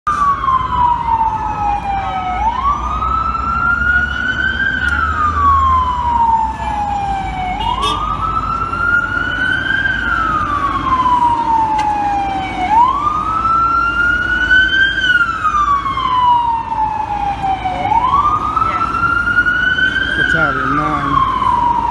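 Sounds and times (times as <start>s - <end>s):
street traffic rumble: 0.0s - 21.9s
electronic siren wailing: 0.1s - 21.9s.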